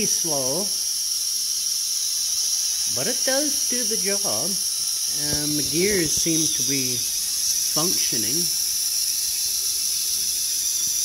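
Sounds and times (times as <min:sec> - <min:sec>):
small electric motor whining: 0:00.0 - 0:11.0.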